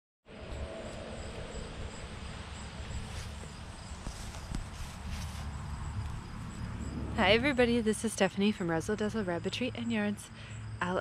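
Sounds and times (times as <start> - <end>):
outdoor background rumble: 0.3 - 11.0.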